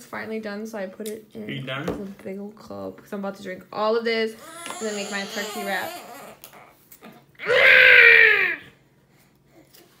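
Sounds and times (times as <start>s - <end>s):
baby squealing: 4.4s - 6.8s.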